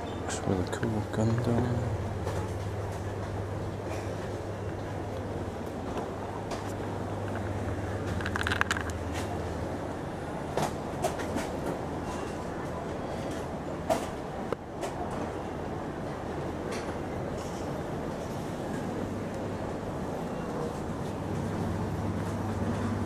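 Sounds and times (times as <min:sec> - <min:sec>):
indoor terminal hum: 0:00.0 - 0:23.0.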